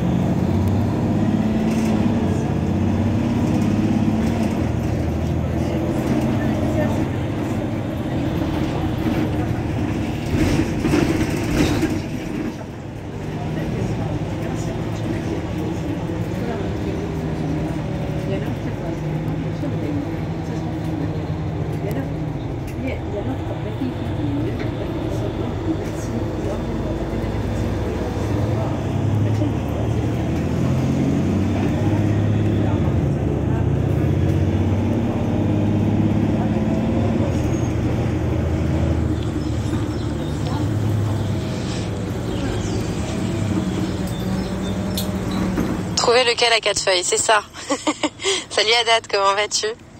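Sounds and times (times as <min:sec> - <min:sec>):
bus engine idling: 0:00.0 - 0:49.9
faint voices: 0:39.5 - 0:44.6.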